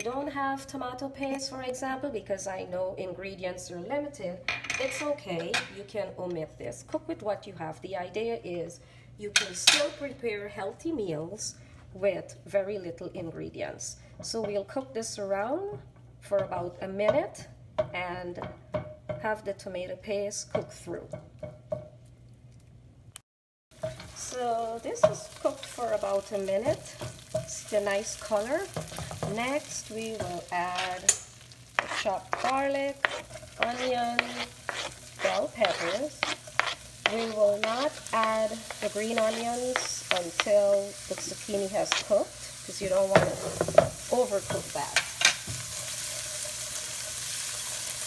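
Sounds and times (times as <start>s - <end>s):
vegetables sizzling in hot oil: 23.7s - 48.0s
low steady hum: 23.8s - 46.2s
wooden spoon stirring in a pan: 23.8s - 48.0s.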